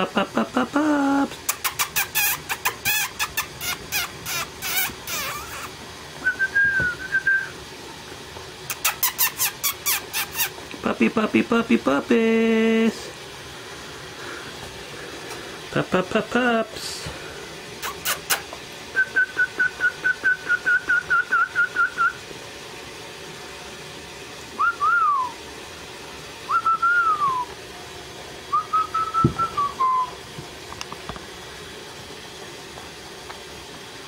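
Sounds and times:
person whistling: 0:06.2 - 0:07.5, 0:19.0 - 0:22.2, 0:24.6 - 0:25.4, 0:26.5 - 0:27.5, 0:28.5 - 0:30.2.

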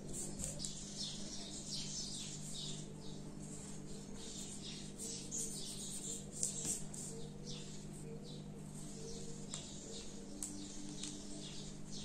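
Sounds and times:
pencil scratching on paper: 0:00.0 - 0:00.6, 0:03.4 - 0:08.0
steady low hum: 0:00.0 - 0:12.0.

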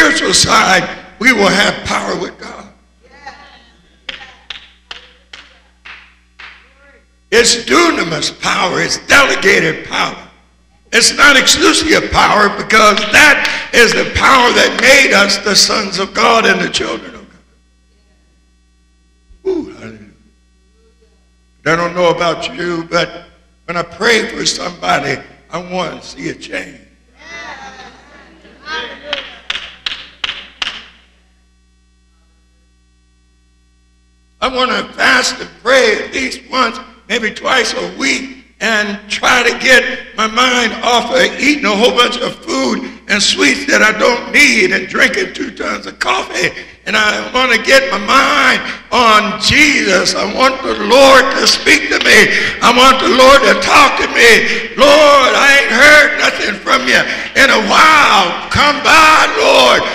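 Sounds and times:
electrical mains hum: 0:00.0 - 0:59.9
hand claps in a hall: 0:04.1 - 0:06.7, 0:29.0 - 0:31.1.

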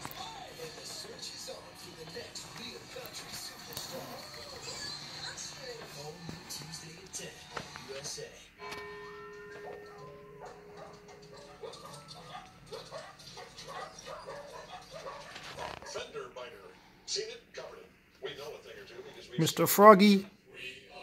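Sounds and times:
commercial music on television: 0:00.0 - 0:21.0.

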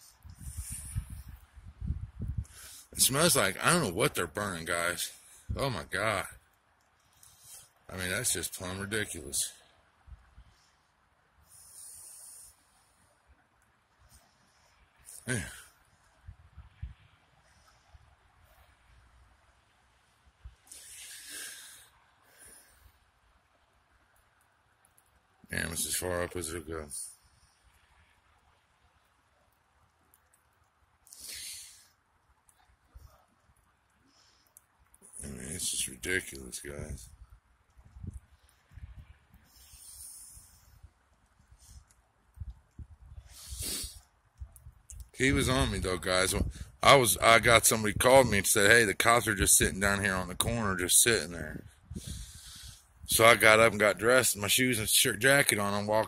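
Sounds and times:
soft hiss: 0:00.0 - 0:56.0
breath close to microphone: 0:11.4 - 0:13.1, 0:20.7 - 0:23.0, 0:31.1 - 0:32.0, 0:43.2 - 0:44.1, 0:51.9 - 0:53.0.

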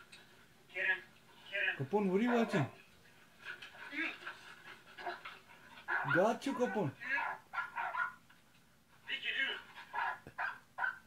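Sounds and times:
faint dog sounds: 0:03.5 - 0:08.2.

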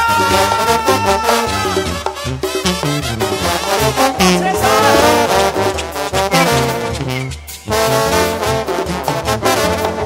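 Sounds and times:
brass band playing: 0:00.0 - 0:10.0
low bass notes: 0:00.0 - 0:10.0.

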